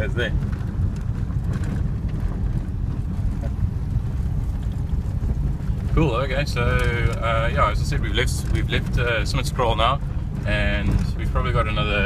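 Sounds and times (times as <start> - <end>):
car engine rumble: 0.0 - 12.0
tyres on gravel: 0.0 - 12.0.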